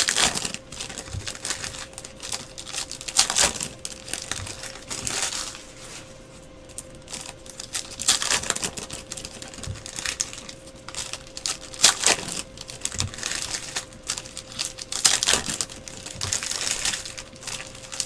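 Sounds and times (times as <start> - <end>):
foil wrappers crinkling: 0.0 - 18.0.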